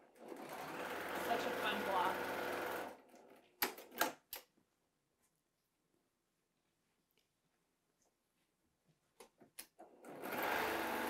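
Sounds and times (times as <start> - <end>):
sewing machine running: 0.0 - 3.4, 9.9 - 11.0.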